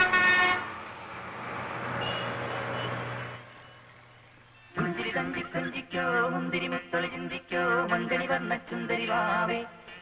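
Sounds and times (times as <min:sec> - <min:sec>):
vehicle horn honking: 0:00.0 - 0:00.7, 0:02.0 - 0:03.9
road traffic passing: 0:00.0 - 0:05.4.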